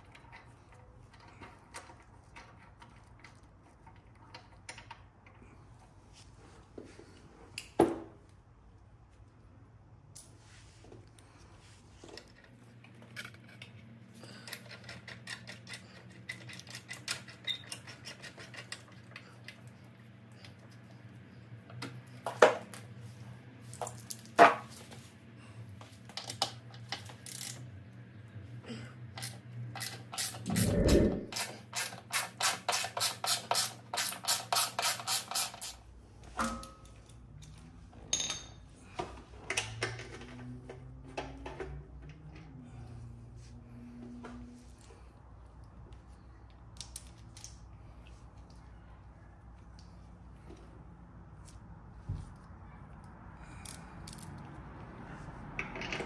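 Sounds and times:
metallic tool clicks and clinks: 53.6s - 54.5s.

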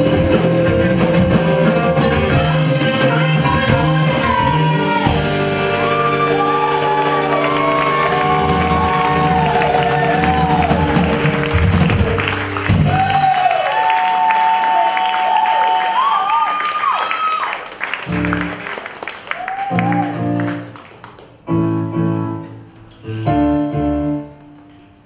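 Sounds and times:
live band with horns and violin: 0.0s - 13.3s
audience cheering: 2.8s - 20.8s.

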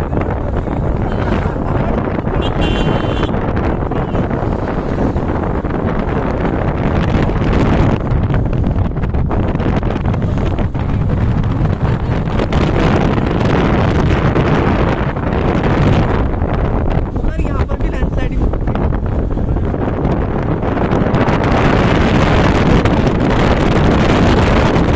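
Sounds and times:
road and vehicle rumble: 0.0s - 24.9s
wind buffeting microphone: 0.0s - 24.9s.

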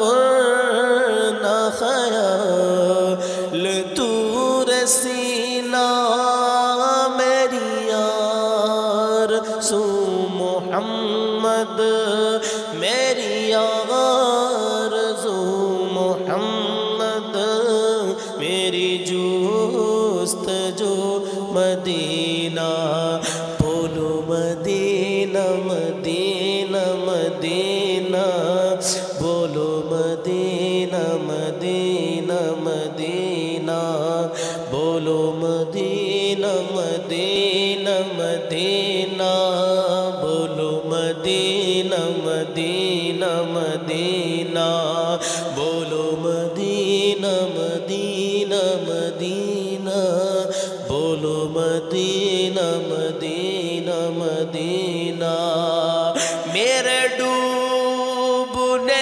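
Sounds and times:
man singing into a microphone: 0.0s - 59.0s.

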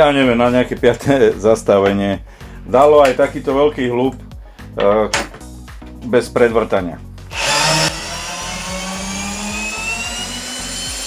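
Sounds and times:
man speaking: 0.0s - 5.2s, 6.0s - 7.0s
low background music: 0.0s - 11.0s.

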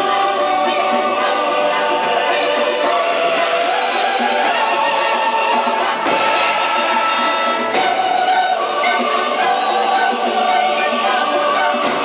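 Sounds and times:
choir singing: 0.0s - 12.0s
symphony orchestra: 0.0s - 12.0s.

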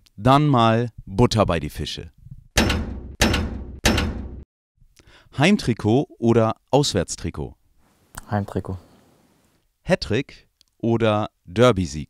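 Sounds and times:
heavy impact hits: 2.6s - 4.4s.

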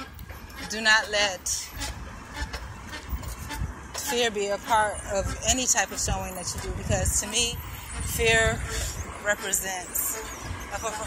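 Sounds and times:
wind rumbling on microphone: 0.0s - 11.0s.

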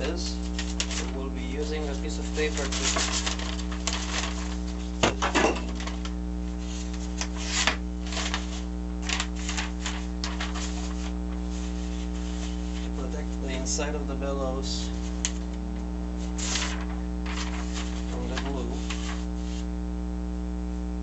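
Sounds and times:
paper rustling: 0.0s - 13.8s, 14.6s - 15.5s, 16.2s - 19.6s
electrical hum: 0.0s - 21.0s.

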